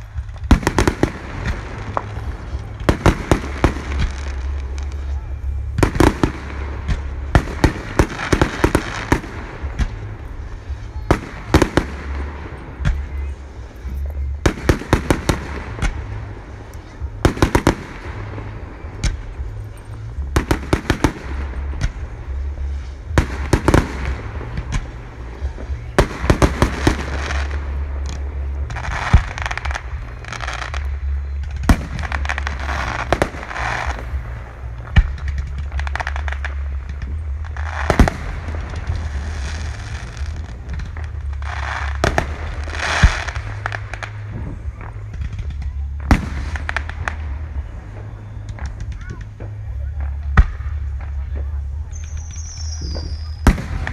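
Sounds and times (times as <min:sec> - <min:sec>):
fireworks bangs and crackles: 0:00.0 - 0:53.9
onlookers' voices: 0:00.0 - 0:53.9.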